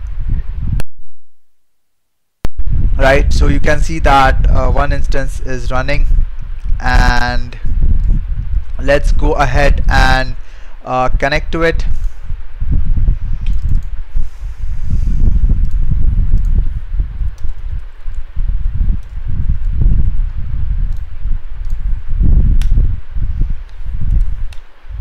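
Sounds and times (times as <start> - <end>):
low rumbling microphone noise: 0.0 - 1.8, 2.4 - 25.0
keyboard typing clicks: 13.4 - 13.9.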